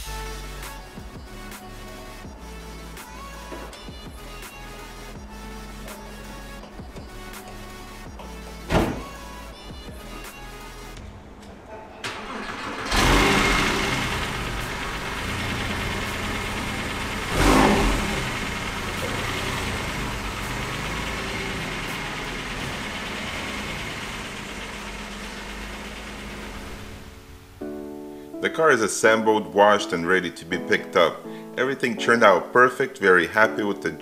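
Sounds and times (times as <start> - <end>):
car engine starting and revving: 11.2 - 27.6.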